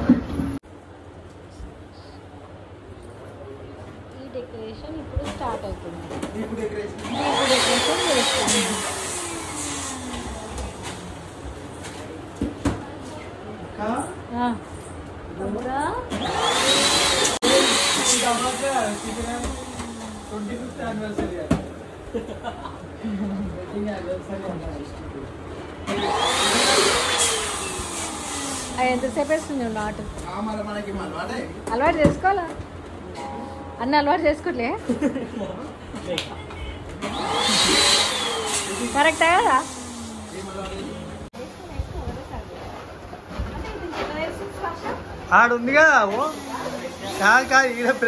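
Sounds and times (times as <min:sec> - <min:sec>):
electric balloon pump rushing air: 0:07.0 - 0:11.2, 0:16.1 - 0:21.2, 0:25.9 - 0:30.1, 0:37.0 - 0:41.3, 0:46.1 - 0:48.0
balloon pump motor whining: 0:16.1 - 0:20.8, 0:37.0 - 0:41.2.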